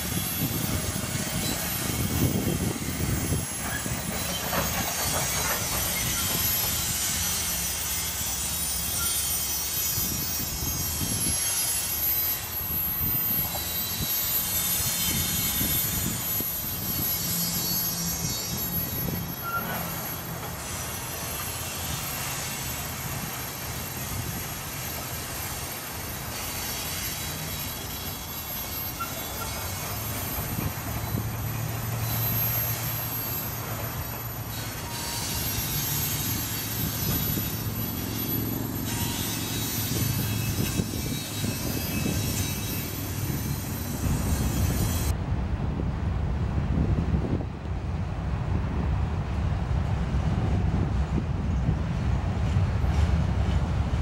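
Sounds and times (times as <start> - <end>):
steel wheels clattering on rails: 0.0 - 45.2, 50.9 - 54.0
freight train rolling past: 0.0 - 54.0.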